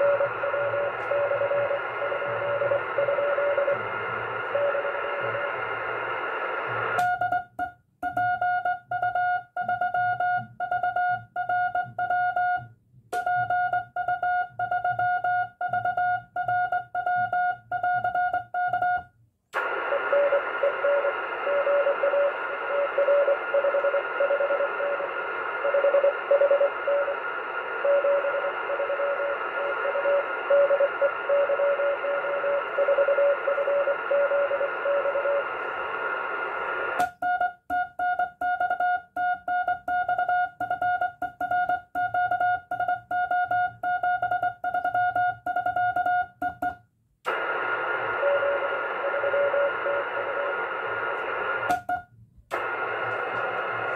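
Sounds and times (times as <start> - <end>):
morse code sidetone beeping: 0.0 - 3.8, 4.5 - 5.5, 7.0 - 19.1, 19.9 - 27.2, 27.8 - 35.5, 37.2 - 46.8, 48.2 - 50.5
radio band hiss: 1.7 - 7.0, 19.6 - 31.3, 33.4 - 37.0, 47.3 - 49.0, 52.6 - 53.9.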